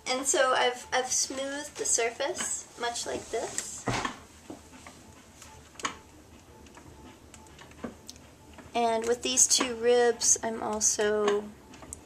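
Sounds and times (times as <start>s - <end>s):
potter's wheel ticking: 8.7s - 12.0s.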